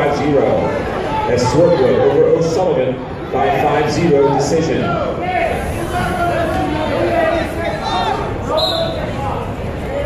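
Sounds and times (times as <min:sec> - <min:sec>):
spectators shouting in gymnasium: 0:00.2 - 0:10.0.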